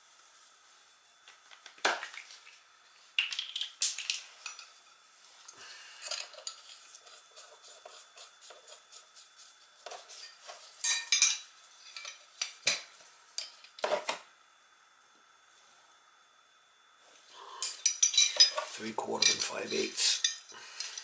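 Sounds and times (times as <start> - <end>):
small metal parts clinking: 17.6 - 21.0.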